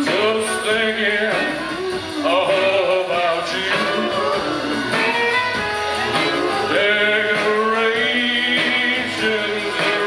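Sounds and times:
man singing: 0.0 - 5.4, 6.0 - 10.0
strummed acoustic guitar: 0.0 - 10.0.

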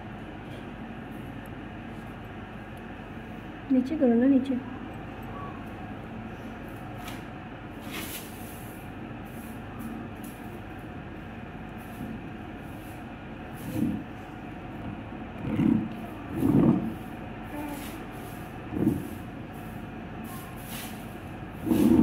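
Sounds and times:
low background rumble: 10.1 - 20.3.

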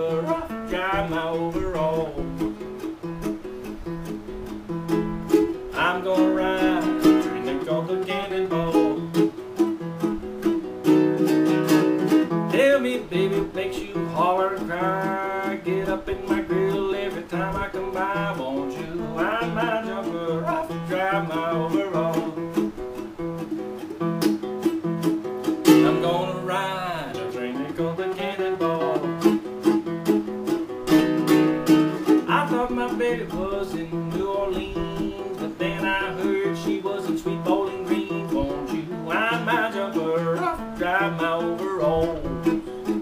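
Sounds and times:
plucked nylon-string guitar blues: 0.0 - 43.0.

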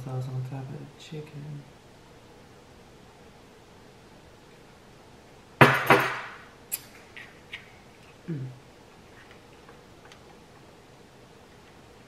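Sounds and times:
glass bottle knocking on table: 5.6 - 6.4
tableware clinking: 5.6 - 6.4.

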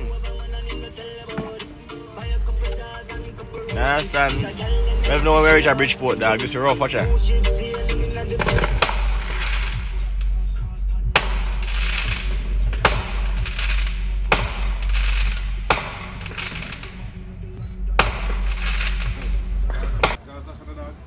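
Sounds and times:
music with heavy bass: 0.0 - 20.2
fireworks banging and crackling: 1.2 - 2.8, 7.6 - 10.4, 11.1 - 20.2.

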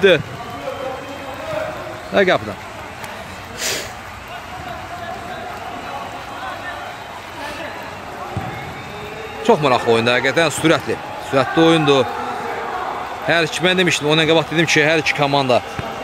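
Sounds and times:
distant players' voices: 0.0 - 16.0.

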